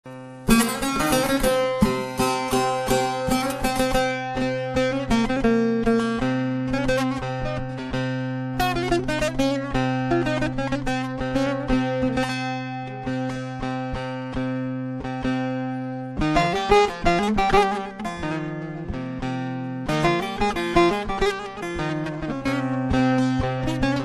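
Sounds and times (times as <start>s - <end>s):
plucked long-necked lute melody: 0.1s - 24.0s.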